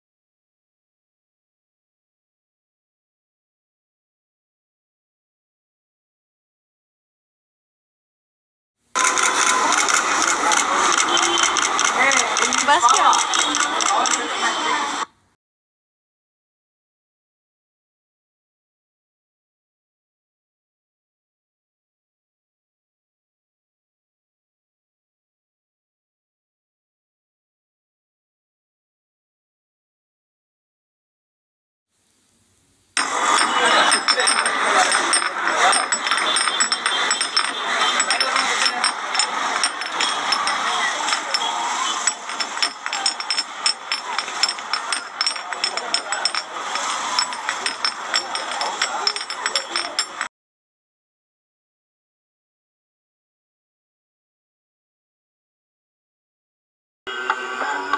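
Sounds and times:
light clicks and clatter: 9.0 - 14.3, 33.0 - 50.3
crowd voices talking: 9.0 - 15.1, 33.0 - 50.3, 57.1 - 57.9.

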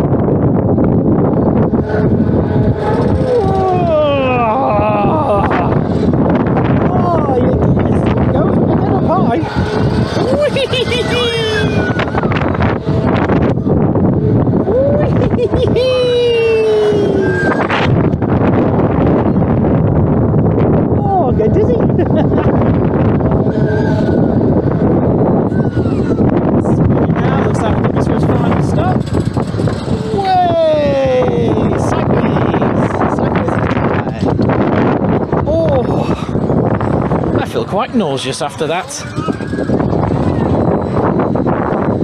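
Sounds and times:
wind rushing over microphone: 0.0 - 42.0
person crying out: 3.0 - 5.9, 10.2 - 12.1, 14.6 - 17.6.

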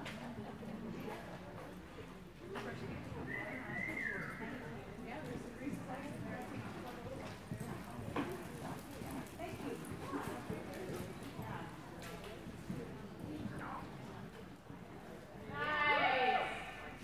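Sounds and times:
horse hoofbeats on dirt: 5.4 - 13.7.

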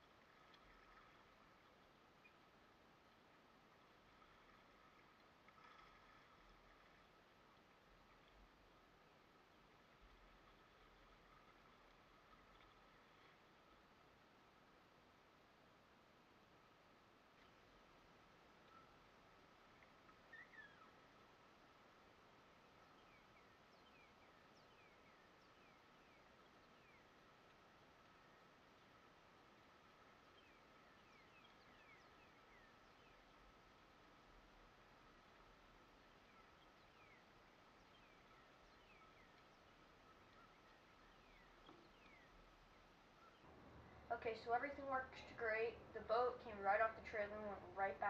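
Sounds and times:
faint high hum: 0.0 - 48.0
faint steady hiss: 0.0 - 48.0
bird chirping: 20.3 - 21.0, 30.2 - 33.3, 36.1 - 44.5.

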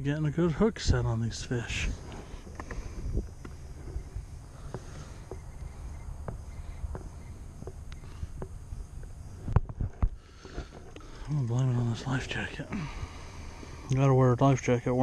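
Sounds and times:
steady low rumble: 0.0 - 10.3.

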